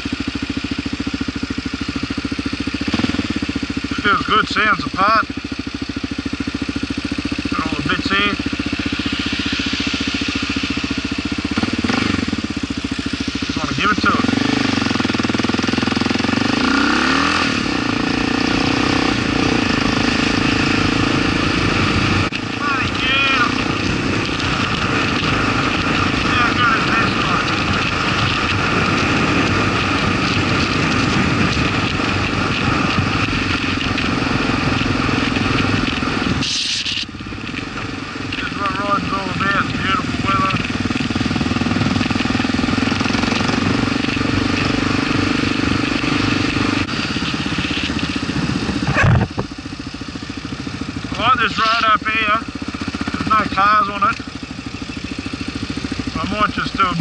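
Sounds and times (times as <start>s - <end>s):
motorcycle engine: 0.0s - 57.0s.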